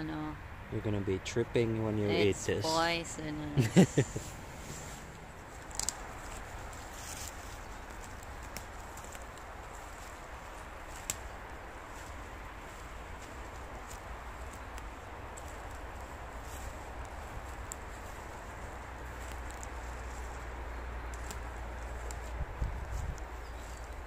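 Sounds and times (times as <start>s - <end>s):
footsteps on forest floor: 3.7s - 24.0s
twigs snapping: 5.4s - 12.2s, 13.2s - 24.0s.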